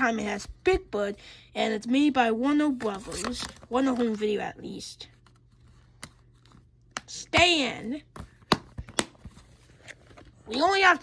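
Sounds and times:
plastic case clicks and taps: 8.4s - 9.2s.

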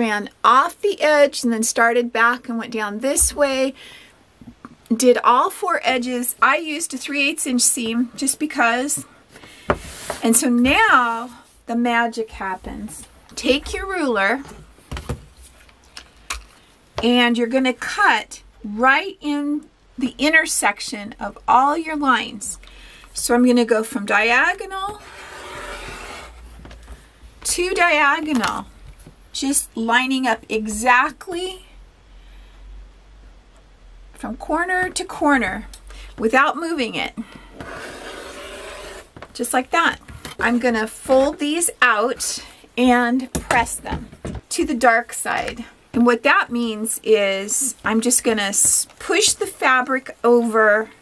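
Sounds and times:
rotary cutter slicing fabric: 25.0s - 26.4s, 37.6s - 39.2s.

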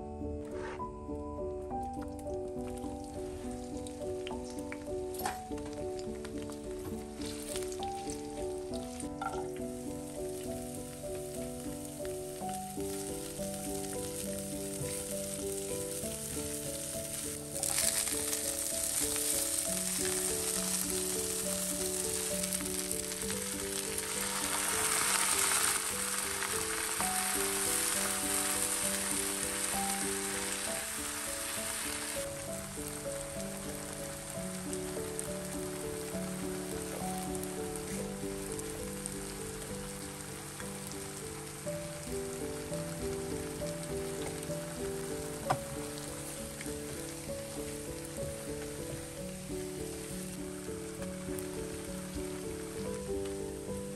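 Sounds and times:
soft background music: 0.0s - 53.9s
vegetables sizzling in hot oil: 1.6s - 53.9s.

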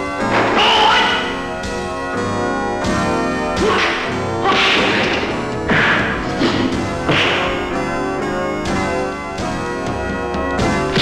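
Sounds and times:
background score chord: 0.0s - 11.0s
swishing punch: 5.7s - 7.6s.

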